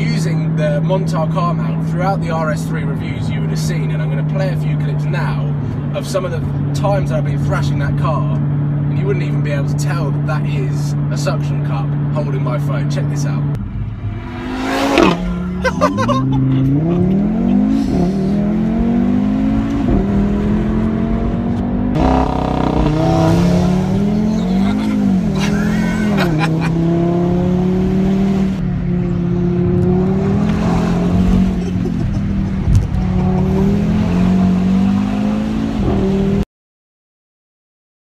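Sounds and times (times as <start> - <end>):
car engine accelerating hard: 13.6 - 36.4.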